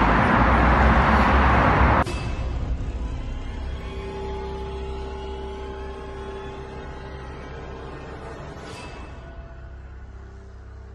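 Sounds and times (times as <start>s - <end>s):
low rumble: 0.0s - 10.9s.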